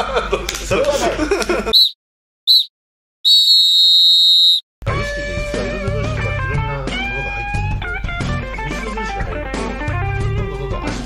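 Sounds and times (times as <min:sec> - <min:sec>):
referee's whistle blasts: 0:01.8 - 0:02.7, 0:03.3 - 0:04.6.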